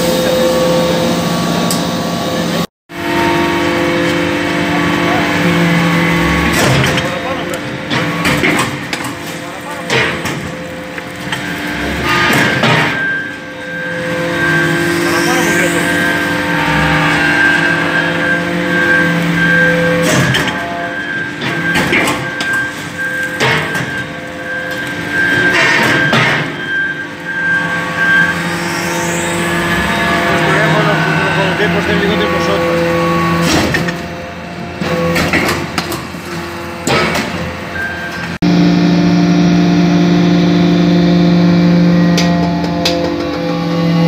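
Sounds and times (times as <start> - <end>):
hydraulic unit humming: 0.0 - 44.0
short rising squeal: 11.6 - 33.5.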